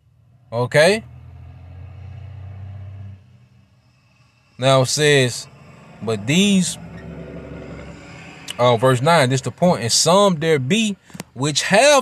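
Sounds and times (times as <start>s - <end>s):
low engine rumble: 0.0s - 11.7s.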